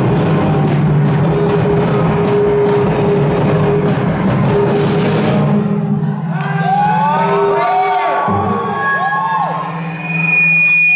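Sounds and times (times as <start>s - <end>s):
live band playing: 0.0s - 6.2s
audience cheering and whooping: 6.2s - 10.2s.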